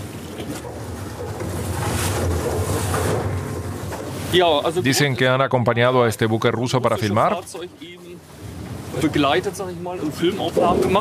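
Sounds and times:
motorboat engine humming: 0:00.0 - 0:11.0
water noise: 0:00.0 - 0:11.0.

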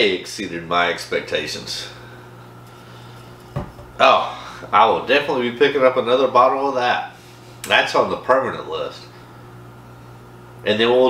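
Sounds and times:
steady low hum: 0:00.0 - 0:11.0
glass bottle thud on table: 0:03.5 - 0:04.0.

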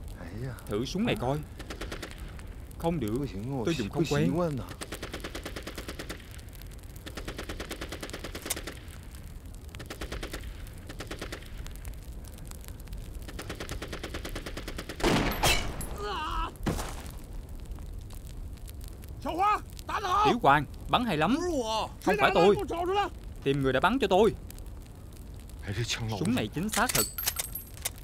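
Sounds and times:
distant machine-gun fire: 0:07.0 - 0:08.8, 0:09.8 - 0:11.5, 0:13.4 - 0:15.8
rifle shot: 0:13.8 - 0:16.0
person shouting: 0:15.9 - 0:16.6, 0:19.2 - 0:20.4, 0:21.4 - 0:23.1.

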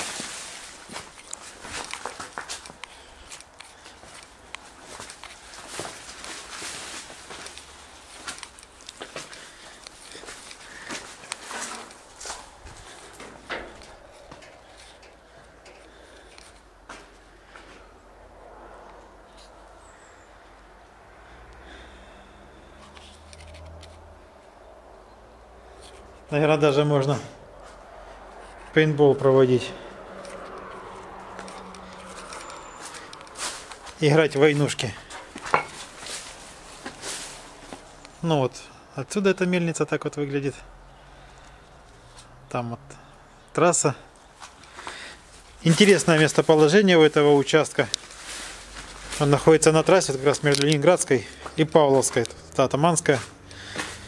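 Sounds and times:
twigs snapping: 0:00.0 - 0:17.1, 0:22.8 - 0:24.1, 0:29.8 - 0:38.2, 0:47.4 - 0:52.6
footsteps through bushes: 0:00.0 - 0:17.9, 0:25.8 - 0:38.3, 0:44.2 - 0:54.0
leaves rustling: 0:00.0 - 0:24.2, 0:25.6 - 0:38.4, 0:44.1 - 0:54.0.

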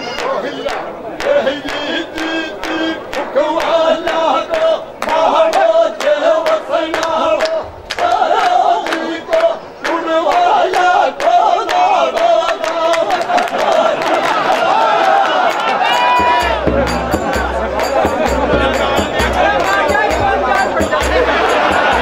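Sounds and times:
men chanting folk song: 0:00.0 - 0:22.0
frame drum strokes: 0:16.2 - 0:22.0.

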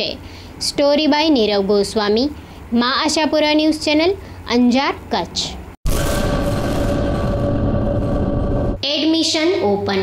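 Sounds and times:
rushing booming sound effect: 0:05.8 - 0:08.8.

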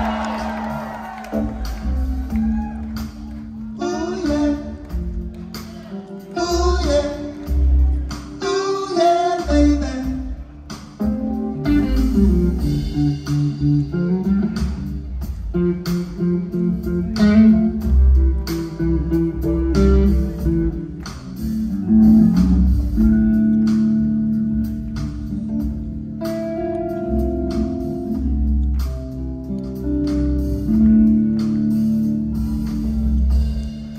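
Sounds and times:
live rock band playing: 0:00.0 - 0:33.9.

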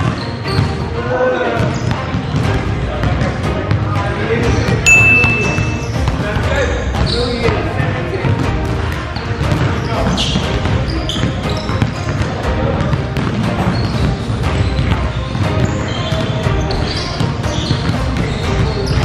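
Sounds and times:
basketballs bouncing on wood floor: 0:00.0 - 0:00.9, 0:01.6 - 0:07.6, 0:08.2 - 0:19.0
background music: 0:00.0 - 0:19.0.

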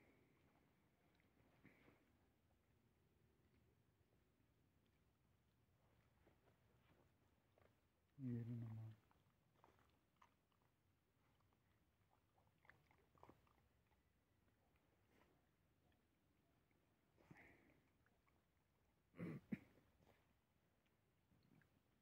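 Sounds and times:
dogs chewing food: 0:04.8 - 0:18.8.

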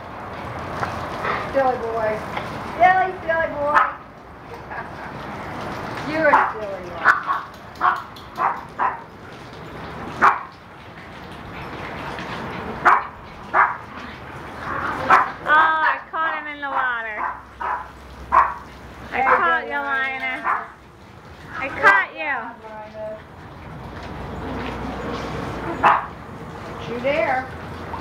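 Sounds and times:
dogs barking: 0:03.7 - 0:04.0, 0:06.2 - 0:09.2, 0:10.1 - 0:10.6, 0:12.7 - 0:14.0, 0:14.6 - 0:16.0, 0:16.6 - 0:19.6, 0:20.4 - 0:20.8, 0:25.7 - 0:26.2.

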